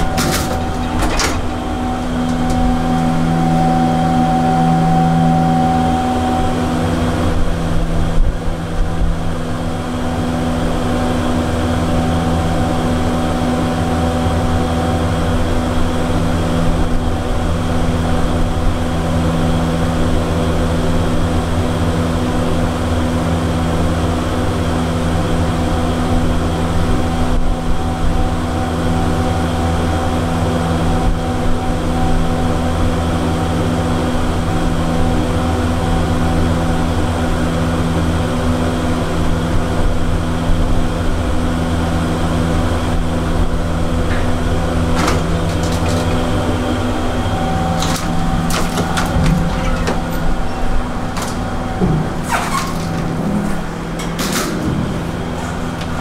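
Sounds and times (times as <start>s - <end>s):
elevator machine hum: 0.0s - 56.0s.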